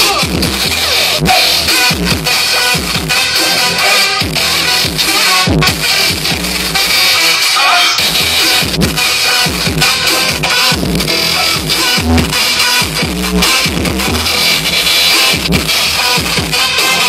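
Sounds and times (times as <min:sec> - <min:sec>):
electronic track with a beat: 0:00.0 - 0:17.0
record scratching: 0:00.0 - 0:17.0.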